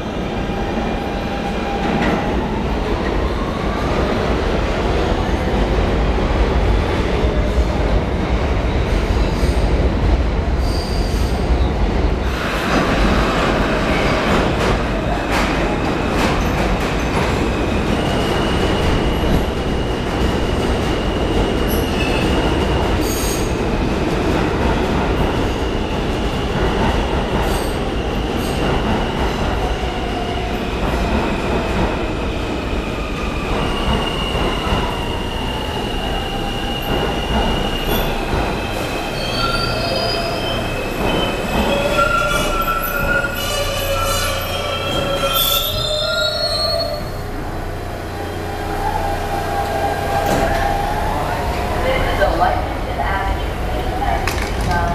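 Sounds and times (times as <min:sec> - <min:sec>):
train rumble: 0:00.0 - 0:54.9
wheels squealing against rails: 0:20.9 - 0:23.6, 0:33.1 - 0:47.2.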